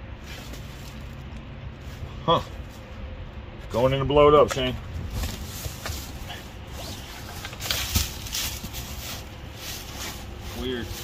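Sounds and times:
clothing and bags rustling: 5.0 - 11.0.

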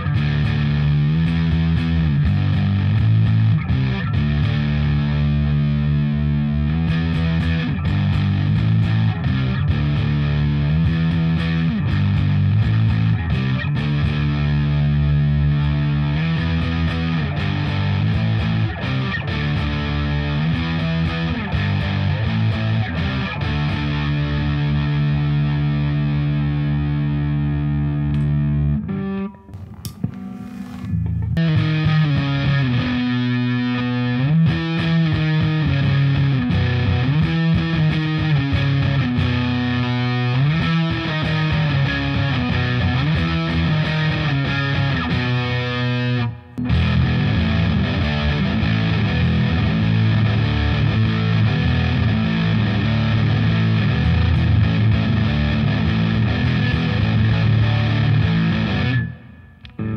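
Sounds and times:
distorted electric guitar: 0.0 - 59.9.

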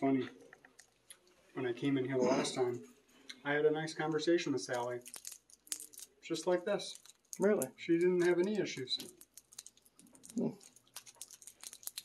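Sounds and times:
faint clicks and rustles: 4.0 - 12.0.

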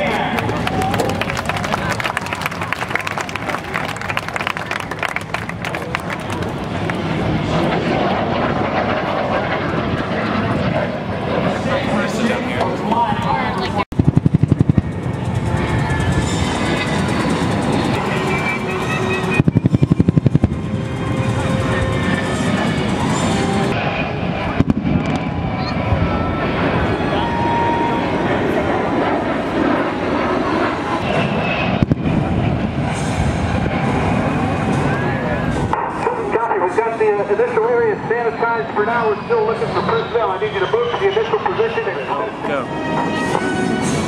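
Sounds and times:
aircraft noise: 0.0 - 44.0
pyrotechnic blasts: 13.9 - 15.2, 19.3 - 21.0, 22.9 - 27.0, 30.8 - 36.0
loudspeaker voices: 34.8 - 42.8.

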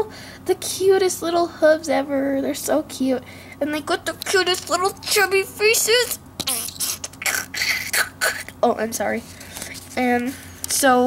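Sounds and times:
person speaking: 3.6 - 11.0.

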